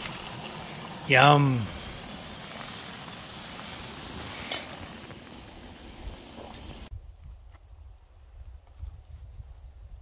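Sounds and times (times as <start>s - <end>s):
camp stove burner hissing: 0.0s - 6.9s
eggs frying: 0.0s - 6.9s.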